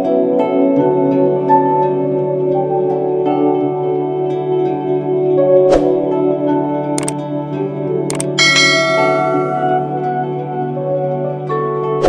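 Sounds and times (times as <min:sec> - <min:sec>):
soft new-age music: 0:00.0 - 0:12.0
double mouse click: 0:08.1 - 0:08.4
notification bell ding: 0:08.1 - 0:10.0.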